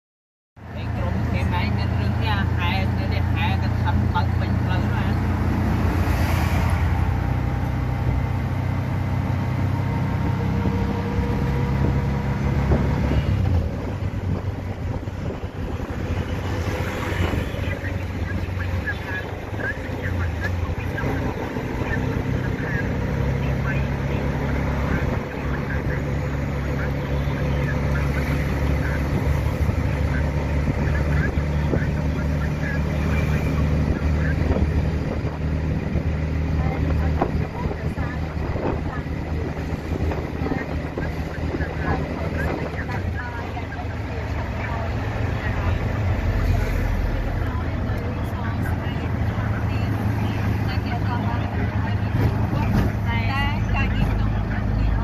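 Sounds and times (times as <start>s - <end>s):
auto rickshaw engine running: 0.6s - 55.0s
road and wind noise: 0.6s - 55.0s.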